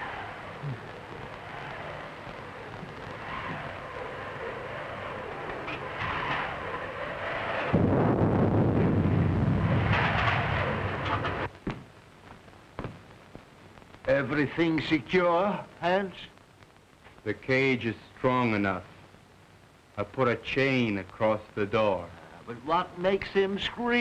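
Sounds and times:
ape screaming: 0.0s - 8.2s.

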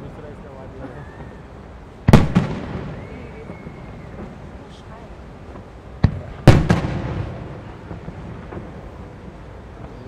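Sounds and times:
firework shells bursting: 0.8s - 10.0s
quick firework cracks: 2.0s - 4.9s, 5.5s - 9.2s.

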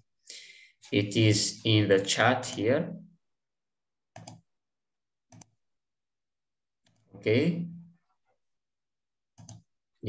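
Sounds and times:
computer mouse clicking: 4.2s - 4.4s, 5.3s - 5.5s, 9.4s - 9.7s.

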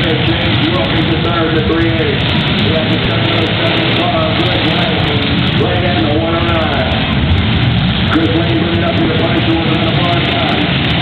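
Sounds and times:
announcer speaking over loudspeaker: 0.0s - 7.1s, 8.1s - 10.8s
car engines running: 0.0s - 11.0s.

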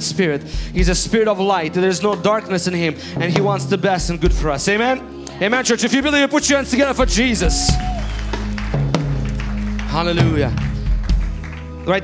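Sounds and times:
hand claps: 7.7s - 12.0s.

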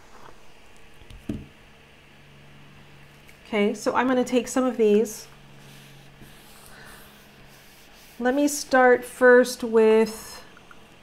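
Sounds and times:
hands rubbing notebook pages: 5.6s - 8.6s.

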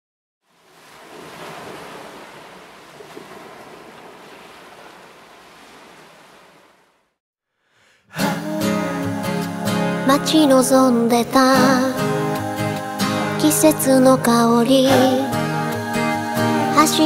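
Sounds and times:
ocean surf washing onto beach: 0.5s - 7.0s.

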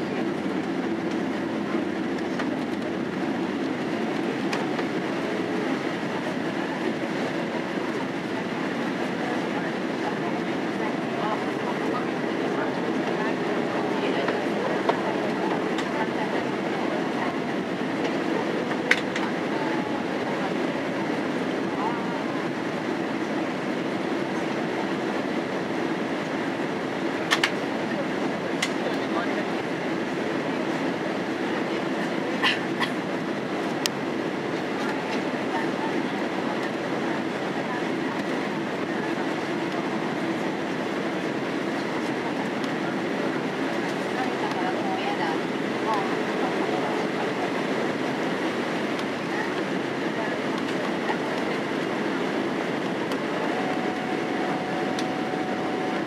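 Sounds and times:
airliner cabin engine rush: 0.0s - 56.0s.

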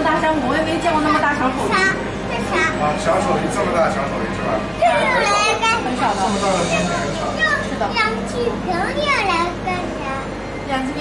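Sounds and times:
children chattering and calling: 0.8s - 11.0s.

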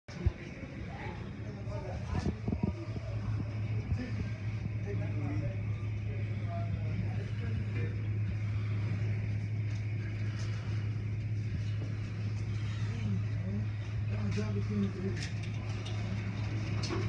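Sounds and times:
steady low hum: 0.1s - 17.0s.

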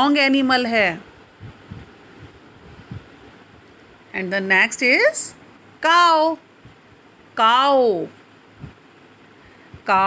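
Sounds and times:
low background rumble: 0.0s - 10.0s
soft low thumps: 1.2s - 3.7s.

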